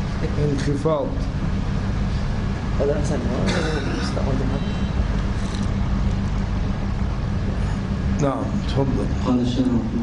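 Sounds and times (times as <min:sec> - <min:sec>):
low-pitched background hum: 0:00.0 - 0:10.0.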